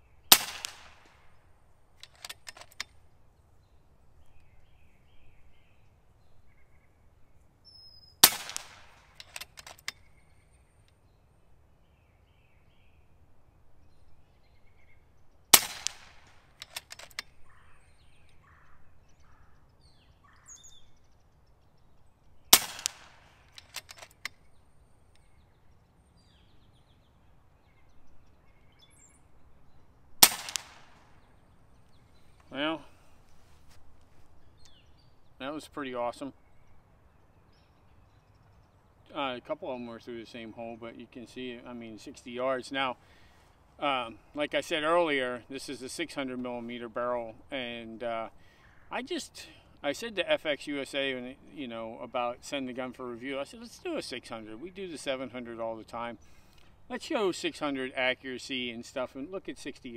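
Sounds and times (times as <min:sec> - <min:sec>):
birds chirping faintly: 0:00.0 - 0:59.9
air rifle shots: 0:00.3 - 0:01.4, 0:08.2 - 0:10.1, 0:15.5 - 0:17.4, 0:22.5 - 0:24.4, 0:30.2 - 0:31.2
rifle cocking handle clicks: 0:02.0 - 0:03.0, 0:08.2 - 0:10.1, 0:15.6 - 0:17.4, 0:22.6 - 0:24.5.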